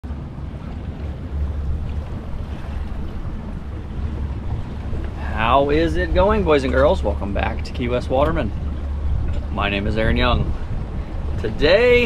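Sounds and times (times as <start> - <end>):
water noise: 0.0 - 12.0
wind buffeting microphone: 0.0 - 12.0.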